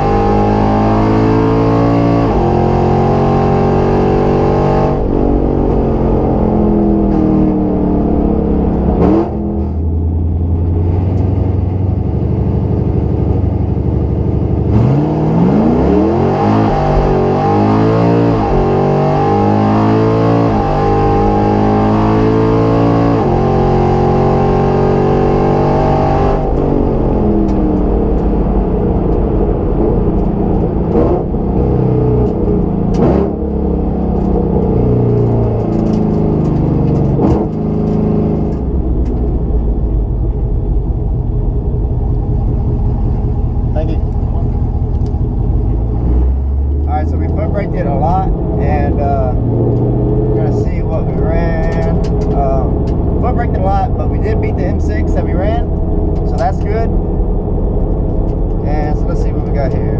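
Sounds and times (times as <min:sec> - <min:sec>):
race car engine revving: 0:00.0 - 0:59.9
gear upshifts: 0:22.7 - 0:59.9
sharp exhaust cracks: 0:46.7 - 0:59.9.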